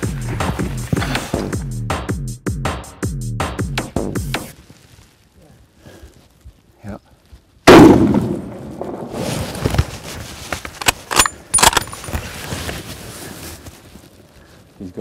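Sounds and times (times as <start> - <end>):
rifle shot: 7.7 - 9.1
metallic clicks and rattles: 10.8 - 12.1.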